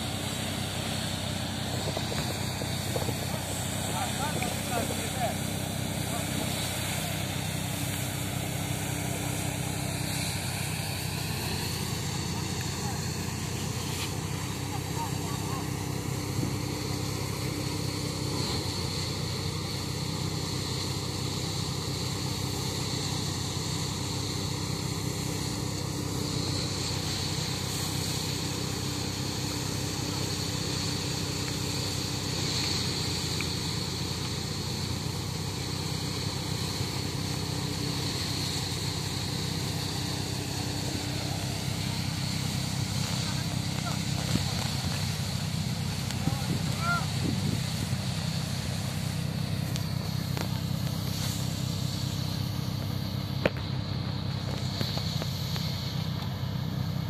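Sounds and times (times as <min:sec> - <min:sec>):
thresher engine droning: 0:00.0 - 0:57.0.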